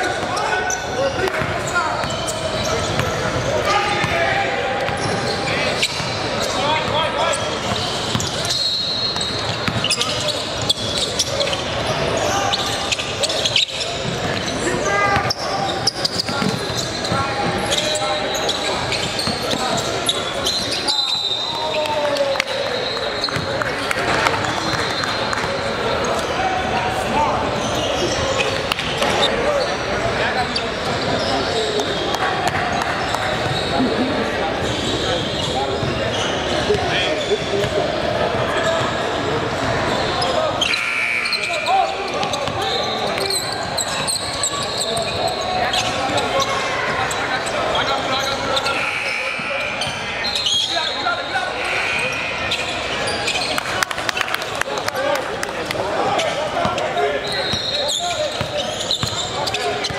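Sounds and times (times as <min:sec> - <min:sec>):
echoing chatter in a gym: 0:00.0 - 0:59.9.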